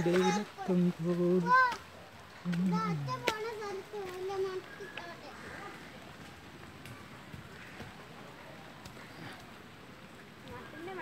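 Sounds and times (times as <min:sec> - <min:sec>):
distant indistinct voices: 0:00.0 - 0:11.0
outdoor background hiss: 0:00.0 - 0:11.0.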